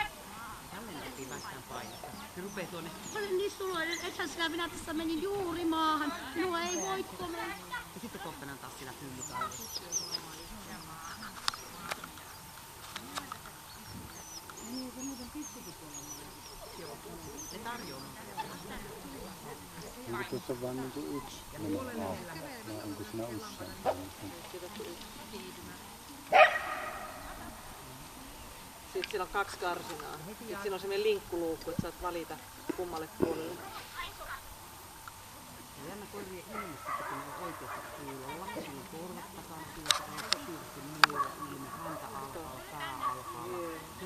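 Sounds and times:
small birds chirping: 0.0s - 44.0s
sharp clicks: 11.2s - 14.7s
dog barking: 26.3s - 27.4s, 36.5s - 38.3s, 41.1s - 42.2s, 42.8s - 43.5s.

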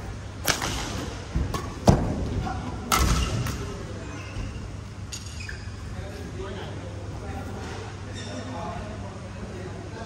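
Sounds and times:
racket striking shuttlecock: 0.4s - 2.0s.

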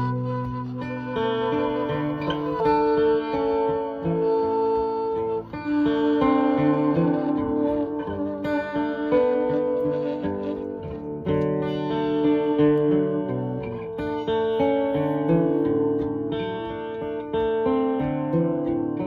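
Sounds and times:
saxophone melody: 0.0s - 15.4s
acoustic guitar chords: 0.0s - 19.0s.

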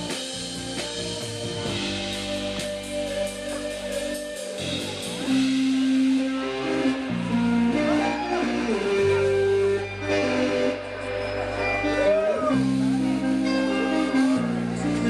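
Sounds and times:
electric bass low notes: 0.0s - 15.0s
guitar bending notes: 0.0s - 15.0s.

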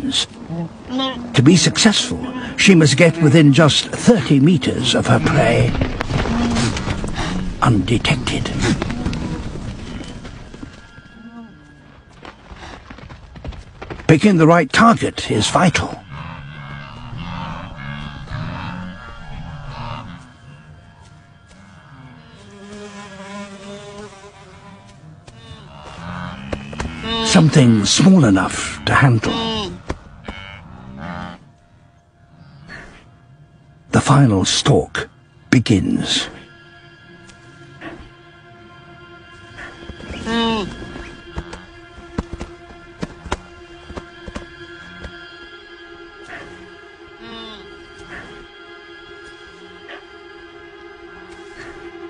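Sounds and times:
wildebeest herd grunting: 0.0s - 10.3s, 15.4s - 23.8s, 24.5s - 31.5s, 46.1s - 48.6s
background music with low drone: 0.0s - 52.0s
hoof clicks: 8.5s - 14.2s
wildebeest calf call: 47.2s - 48.2s.

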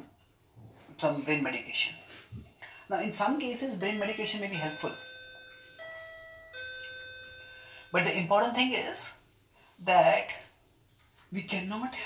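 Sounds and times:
ringing chime notes: 4.0s - 8.0s.

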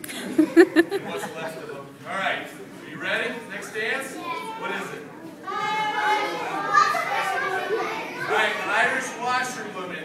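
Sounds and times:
children chattering and calling out: 2.6s - 9.7s.

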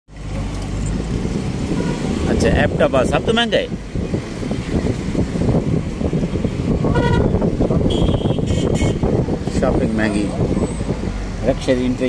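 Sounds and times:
cars driving past: 0.1s - 12.0s.

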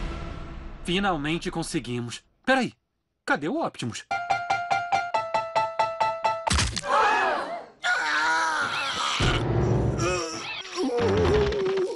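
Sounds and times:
floor piano notes: 4.1s - 6.5s.

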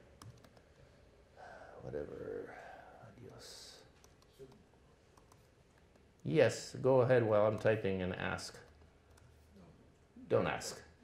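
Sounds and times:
faint laptop keyboard typing: 0.0s - 0.8s, 3.0s - 6.4s, 7.4s - 9.5s.

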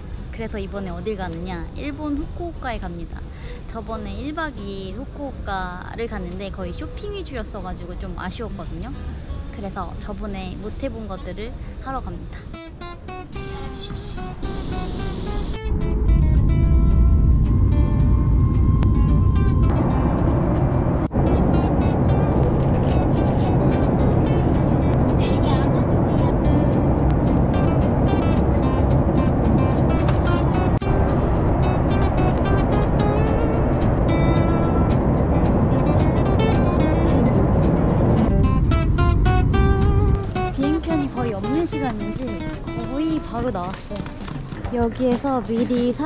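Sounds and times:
background music: 0.0s - 46.0s
airliner cabin noise roar: 13.4s - 44.8s.

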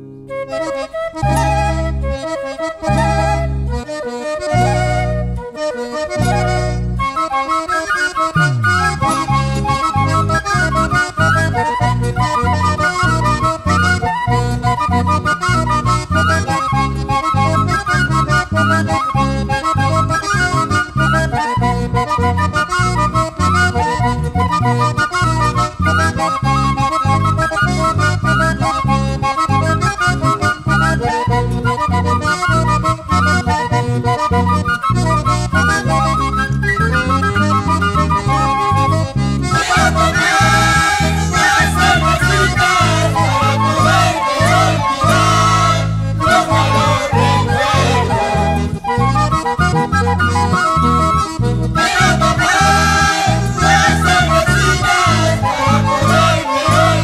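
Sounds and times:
reedy lead melody: 0.0s - 57.0s
strummed guitars: 39.4s - 50.5s.

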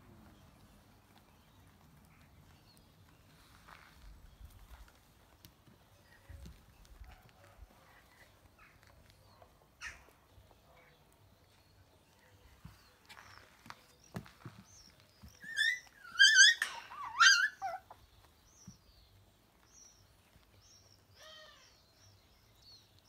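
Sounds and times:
puppies yelping: 15.3s - 18.0s.

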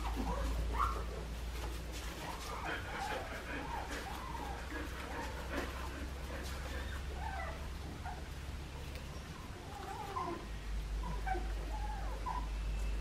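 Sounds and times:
rustle of wood shavings: 0.0s - 11.8s
puppies whimpering and squeaking: 0.0s - 13.0s.

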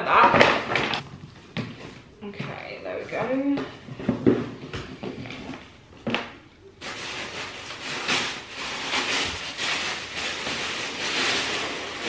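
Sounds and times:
paper packaging rustling: 6.2s - 12.0s.

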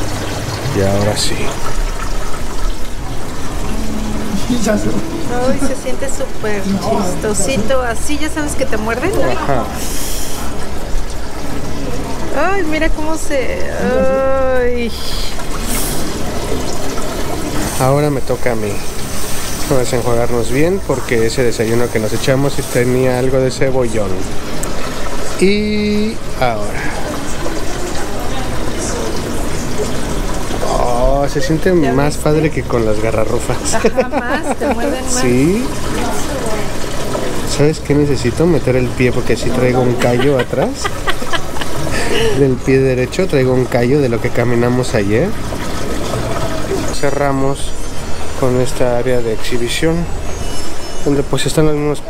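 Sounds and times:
water running: 0.0s - 52.0s.

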